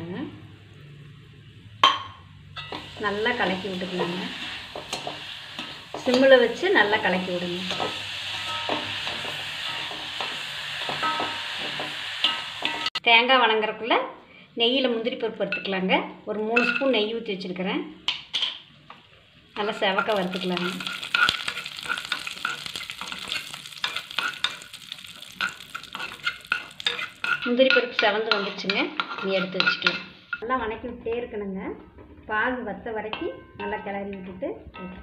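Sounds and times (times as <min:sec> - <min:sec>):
metal spatula scraping a pan: 0:02.6 - 0:13.0, 0:19.9 - 0:30.4
sizzling hiss: 0:02.6 - 0:13.0, 0:19.9 - 0:27.5.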